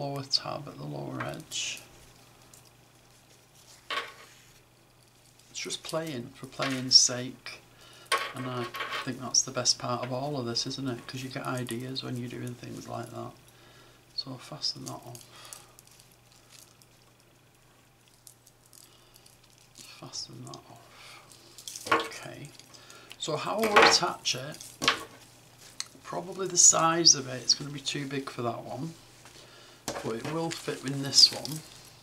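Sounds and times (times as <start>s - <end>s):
faint low hum: 0.0s - 32.0s.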